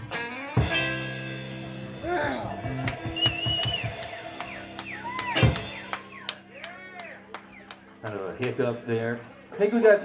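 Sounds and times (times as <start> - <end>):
electric guitars playing: 0.0 - 9.6
drums playing: 0.6 - 6.6.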